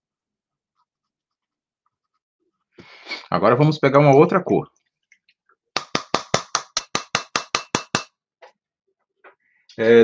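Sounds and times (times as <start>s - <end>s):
rapid sharp knocks: 5.8s - 8.2s.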